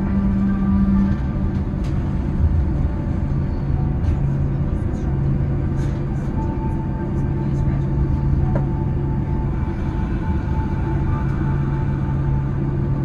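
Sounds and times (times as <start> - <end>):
engines idling hum: 0.0 - 13.0
low rumble of wheels: 0.0 - 13.0
low steady tone: 0.0 - 13.0.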